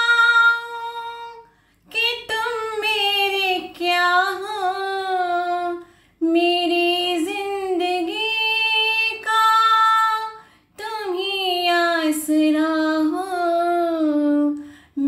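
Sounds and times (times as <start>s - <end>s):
woman singing unaccompanied: 0.0s - 15.0s.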